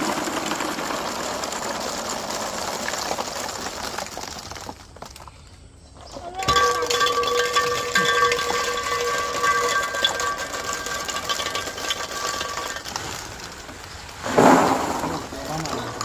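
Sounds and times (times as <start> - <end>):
plastic balls clattering: 0.0 - 16.0.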